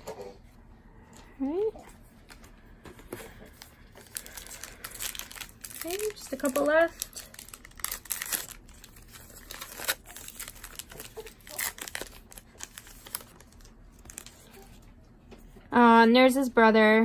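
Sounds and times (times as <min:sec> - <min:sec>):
wrapper tearing and crinkling: 0:03.9 - 0:14.6.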